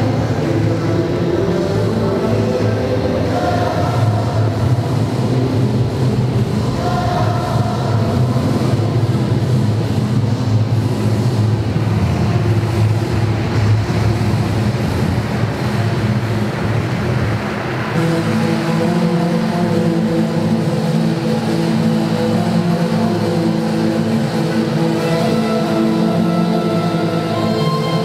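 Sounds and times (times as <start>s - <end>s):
music over speakers: 0.0s - 28.0s.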